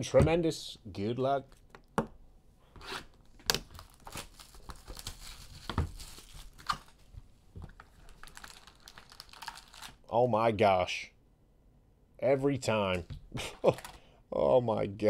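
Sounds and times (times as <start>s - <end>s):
plastic wrap tearing and crinkling: 3.3s - 7.1s, 7.7s - 10.1s.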